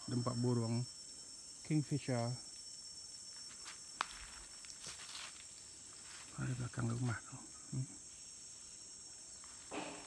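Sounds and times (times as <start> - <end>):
high-pitched insect chorus: 0.0 - 10.0
footsteps on dry leaves: 3.4 - 7.2.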